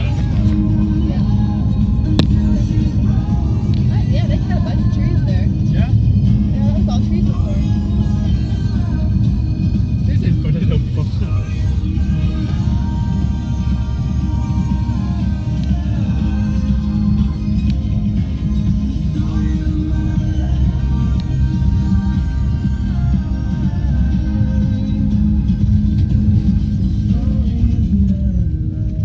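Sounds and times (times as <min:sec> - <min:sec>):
car radio music: 0:00.0 - 0:29.0
car tyre and engine rumble: 0:00.0 - 0:29.0.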